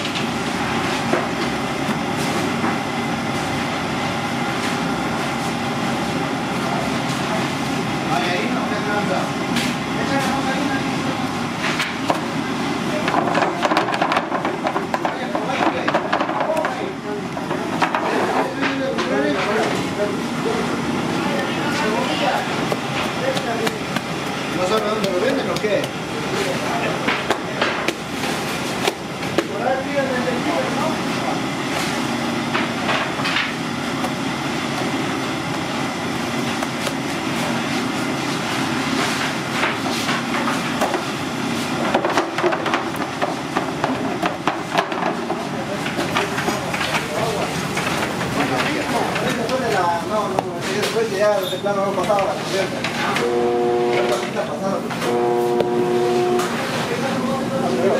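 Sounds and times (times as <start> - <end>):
indistinct voices: 45.5 - 57.9.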